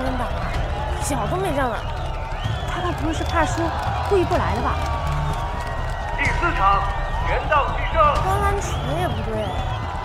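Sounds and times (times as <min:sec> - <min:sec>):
crowd cheering: 0:00.0 - 0:10.0.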